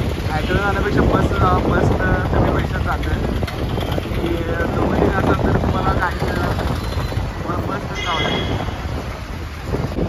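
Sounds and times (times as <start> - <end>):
bus engine and road rumble: 0.0 - 10.0
traffic: 0.0 - 10.0.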